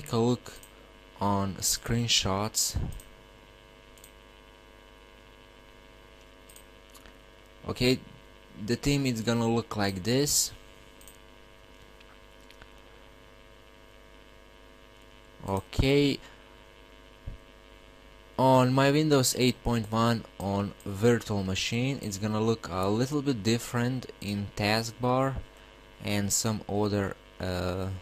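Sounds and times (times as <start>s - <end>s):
faint mains hum: 0.0s - 28.0s.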